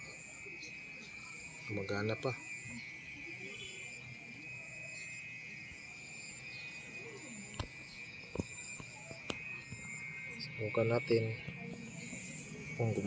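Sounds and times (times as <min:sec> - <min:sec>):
insects trilling: 0:00.0 - 0:13.0.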